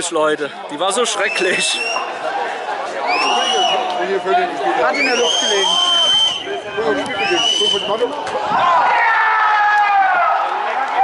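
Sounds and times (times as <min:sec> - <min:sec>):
crowd chatter: 0:00.0 - 0:11.0
shrill whistle blasts: 0:01.2 - 0:02.1, 0:03.1 - 0:03.9, 0:04.9 - 0:08.0.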